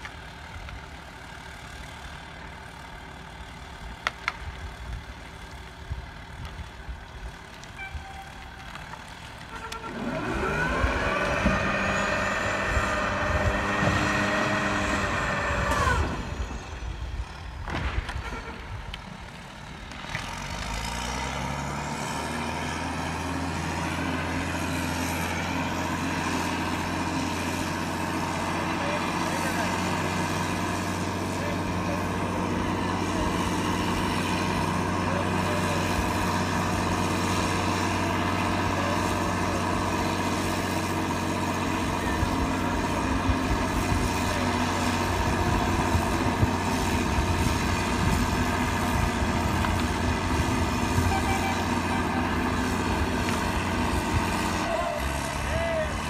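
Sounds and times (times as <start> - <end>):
diesel engine revving under load: 0.0 - 56.0.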